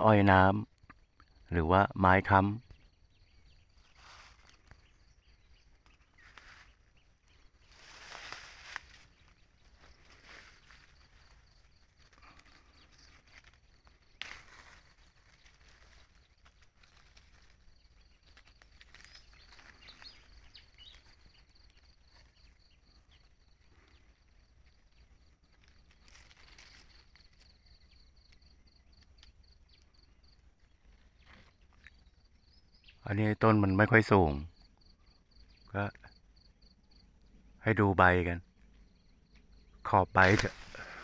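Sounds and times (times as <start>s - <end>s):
rustling of leaves: 2.6s - 32.8s, 39.8s - 41.0s
footsteps: 7.7s - 11.4s, 40.2s - 41.0s.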